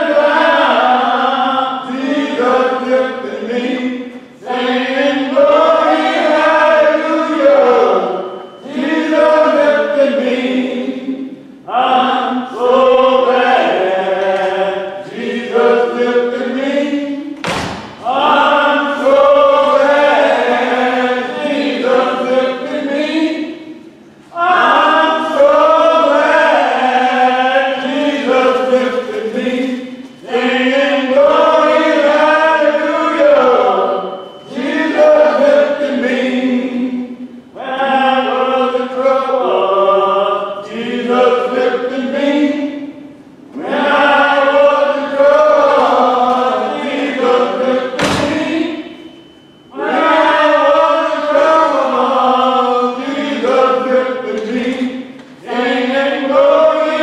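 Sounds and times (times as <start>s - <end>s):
voices singing a hymn: 0.0s - 57.0s
thump: 17.4s - 18.0s, 48.0s - 48.5s.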